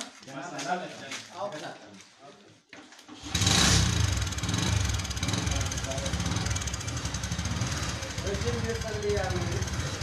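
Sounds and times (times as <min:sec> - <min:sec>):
motorcycle engine starting and idling: 0:03.1 - 0:10.0.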